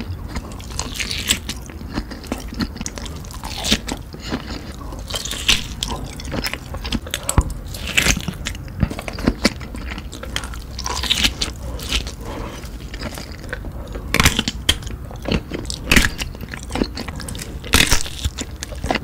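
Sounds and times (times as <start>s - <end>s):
biting and chewing sausage: 0.0s - 19.0s.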